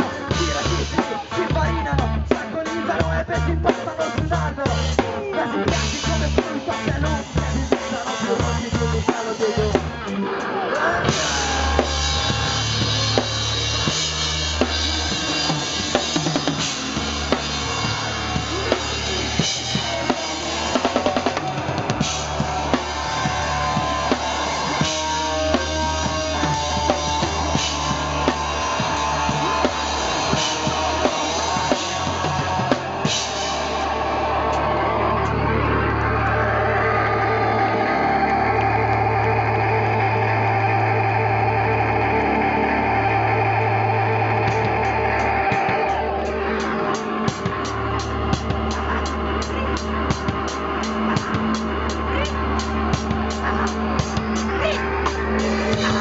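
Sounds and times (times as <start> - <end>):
fast drumming: 0.0 - 10.2, 11.0 - 35.4, 44.4 - 56.0
live rock band: 0.0 - 56.0.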